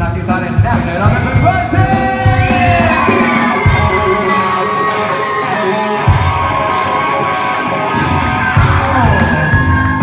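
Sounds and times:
live rock band playing: 0:00.0 - 0:10.0
electric guitars bending notes: 0:00.7 - 0:10.0
crowd cheering and whooping: 0:02.2 - 0:10.0.

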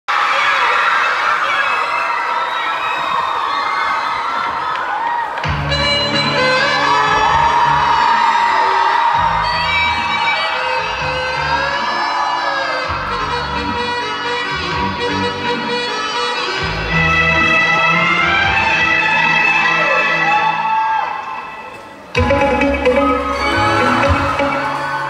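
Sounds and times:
audience cheering and whooping: 0:00.1 - 0:13.1, 0:18.2 - 0:25.0.

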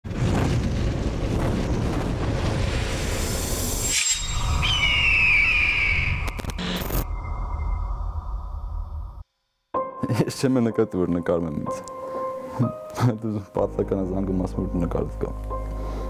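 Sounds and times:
boom-like rumble: 0:00.0 - 0:05.1
deep rumbling whoosh: 0:00.1 - 0:09.2
falling whistle: 0:03.8 - 0:08.6
short glitchy clicks: 0:06.2 - 0:07.0.

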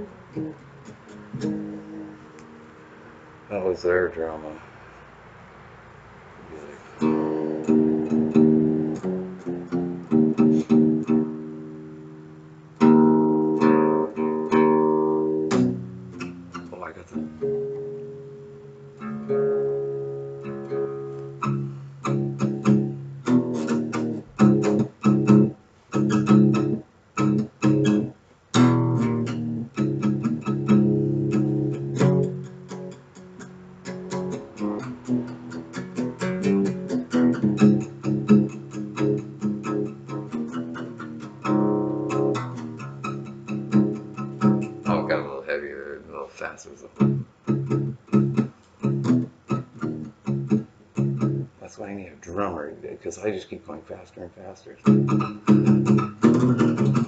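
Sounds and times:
acoustic guitar strumming: 0:00.0 - 0:04.0, 0:06.4 - 0:54.0, 0:54.8 - 0:57.0.

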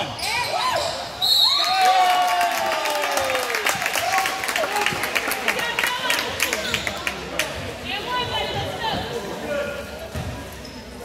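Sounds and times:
voices in a gym: 0:00.0 - 0:11.0
basketball bouncing on court: 0:10.1 - 0:10.4.

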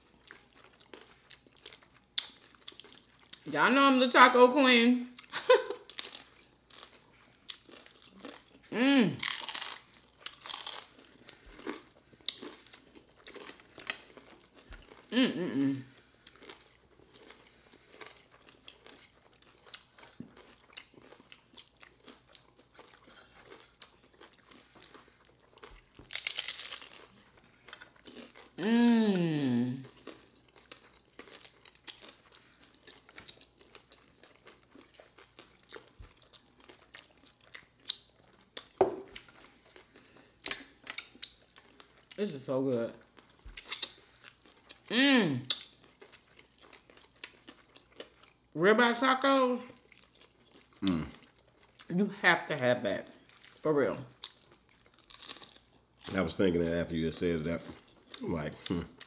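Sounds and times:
crunching and chewing tacos: 0:00.0 - 0:03.5, 0:05.0 - 0:59.0
person humming mmm: 0:15.1 - 0:15.9, 0:28.6 - 0:29.8, 0:50.8 - 0:51.1.

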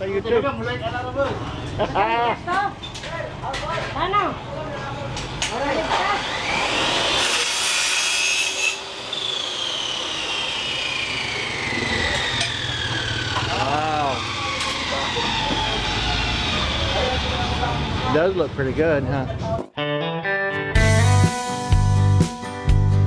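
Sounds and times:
electric power saw cutting: 0:05.5 - 0:18.3
motor winding down whine: 0:05.8 - 0:07.3, 0:08.3 - 0:18.1.

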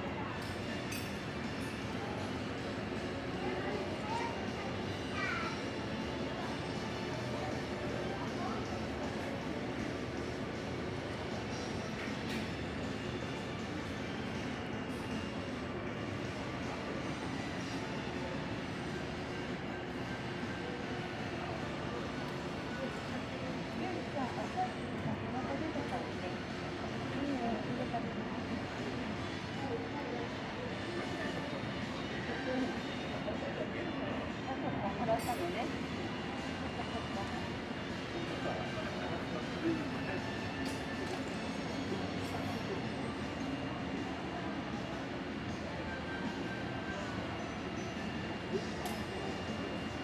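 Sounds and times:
faint voices murmuring: 0:00.0 - 0:50.0.

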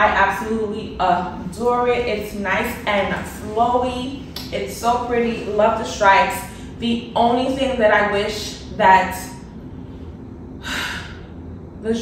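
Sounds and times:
woman speaking: 0:00.0 - 0:09.5.

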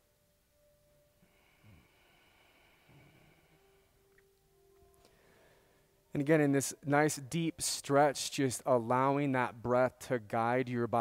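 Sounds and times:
faint high-pitched hum: 0:00.0 - 0:10.6.

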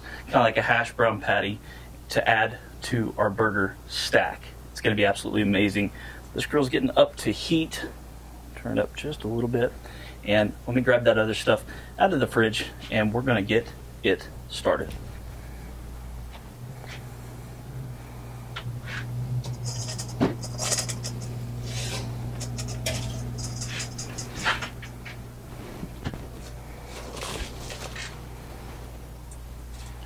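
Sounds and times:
refrigerator hum: 0:00.0 - 0:30.0
containers clinking and knocking: 0:22.3 - 0:24.8
plastic crinkling: 0:25.9 - 0:28.2.

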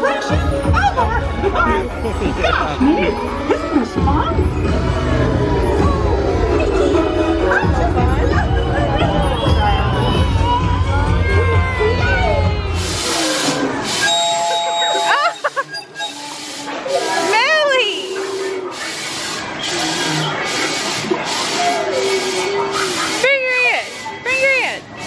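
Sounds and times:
loud music: 0:00.0 - 0:14.1.

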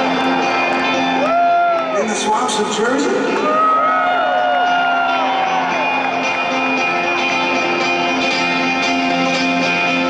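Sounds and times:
crowd whooping and shouting: 0:00.0 - 0:02.4, 0:03.3 - 0:08.2
live rock band playing chords: 0:00.0 - 0:10.0.

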